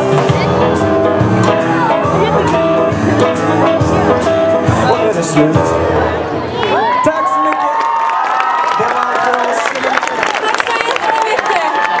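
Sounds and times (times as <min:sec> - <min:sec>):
band playing song: 0:00.0 - 0:07.4
children cheering and shouting: 0:06.1 - 0:12.0
hands clapping: 0:07.4 - 0:12.0.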